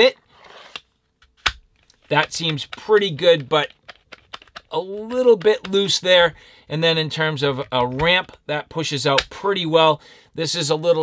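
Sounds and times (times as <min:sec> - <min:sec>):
knife sliding into sheath: 0:00.4 - 0:00.8.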